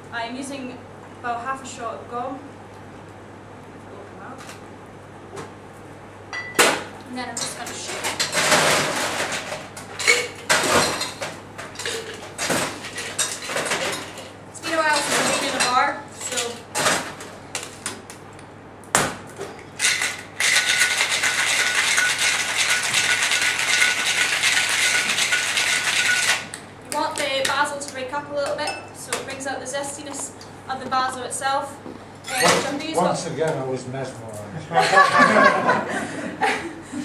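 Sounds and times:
bar tools and glass clinking: 6.3s - 6.7s, 10.0s - 14.3s
cocktail shaker ice rattling: 19.8s - 26.6s.

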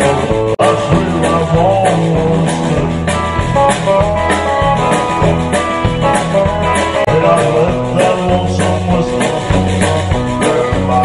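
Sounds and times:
singer on microphone: 0.0s - 3.2s, 7.0s - 11.0s
bass guitar: 0.0s - 11.0s
drum kit beat: 0.0s - 11.0s
electric guitar: 0.0s - 11.0s.

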